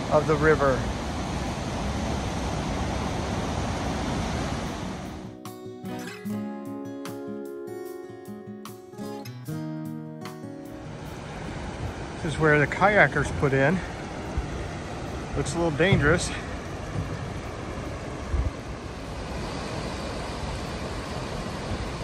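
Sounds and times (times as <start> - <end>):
whitewater rapids rushing: 0.0 - 5.2, 10.9 - 22.0
background music with held notes: 5.3 - 13.5.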